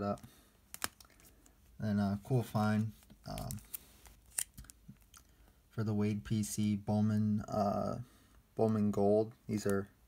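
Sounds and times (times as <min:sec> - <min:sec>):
plastic card sleeve clicks and crinkles: 0:00.7 - 0:01.6, 0:02.8 - 0:05.3.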